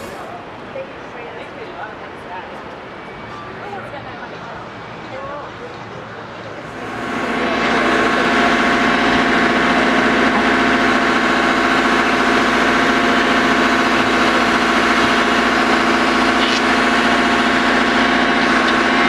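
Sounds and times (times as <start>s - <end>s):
diesel engine idling: 5.1s - 19.0s.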